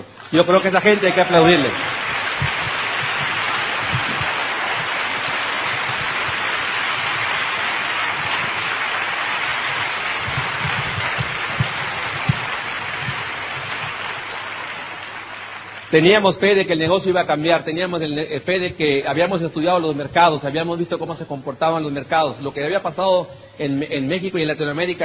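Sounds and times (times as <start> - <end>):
large audience applauding: 0.0 - 16.8.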